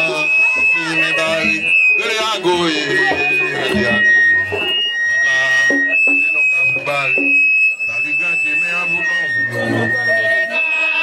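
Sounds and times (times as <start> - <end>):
man speaking through loudspeakers: 0.0 - 4.2, 5.3 - 10.7.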